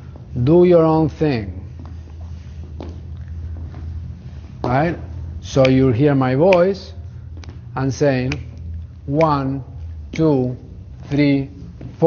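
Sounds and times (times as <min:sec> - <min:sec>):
steady low hum: 0:00.0 - 0:12.0
shoe scuffs: 0:01.6 - 0:05.2.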